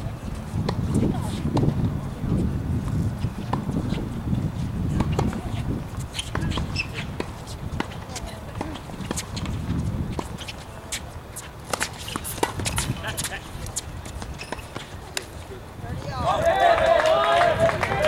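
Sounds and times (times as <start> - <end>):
tennis ball struck by rackets: 11.6 - 13.3.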